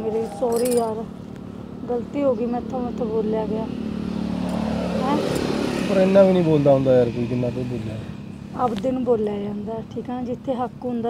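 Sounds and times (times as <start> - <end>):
motor vehicle engine: 0.0 - 11.0.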